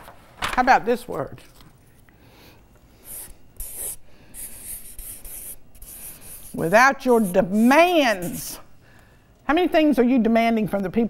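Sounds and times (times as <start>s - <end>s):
marker scratching on paper: 3.0s - 8.6s.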